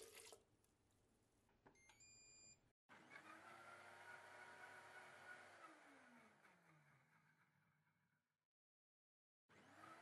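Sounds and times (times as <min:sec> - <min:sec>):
blender motor running: 0:03.1 - 0:06.7.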